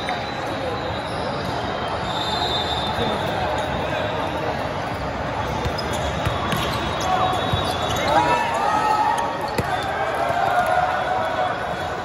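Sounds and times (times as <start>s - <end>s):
voice babble in a big hall: 0.0s - 12.0s
sneakers squeaking on court: 5.4s - 8.4s, 9.4s - 9.8s.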